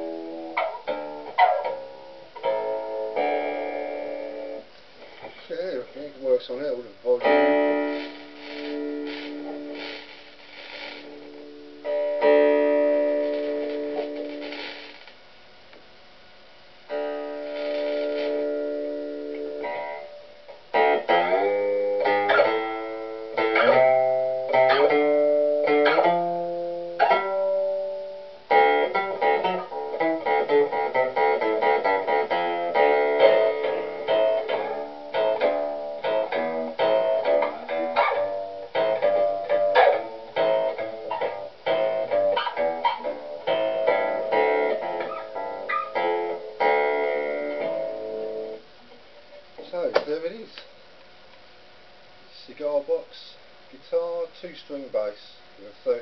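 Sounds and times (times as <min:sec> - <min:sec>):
plucked bass guitar notes: 0:07.0 - 0:10.1, 0:11.0 - 0:14.9, 0:16.9 - 0:48.6.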